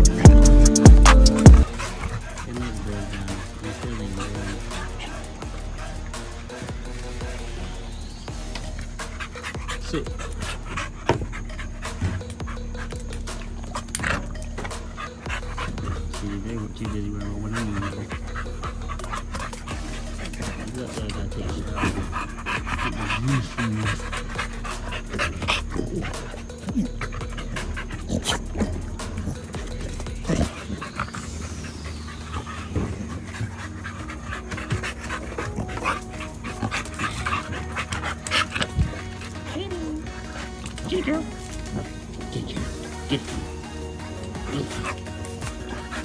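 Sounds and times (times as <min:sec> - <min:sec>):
background music: 0:00.0 - 0:46.0
dogs panting: 0:00.0 - 0:46.0
dogs whimpering: 0:00.0 - 0:46.0.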